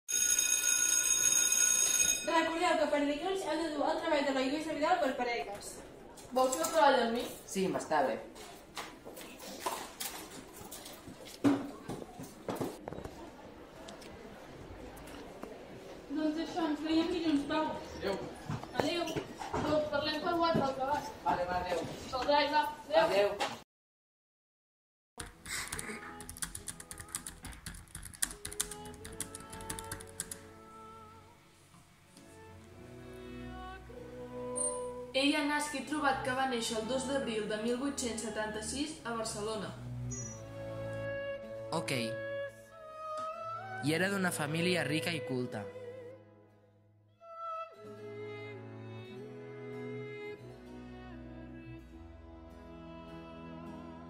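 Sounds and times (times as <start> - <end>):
electric bell ringing: 0.1 - 2.7
laptop keyboard typing: 25.2 - 30.4
background music with held notes: 26.0 - 54.0.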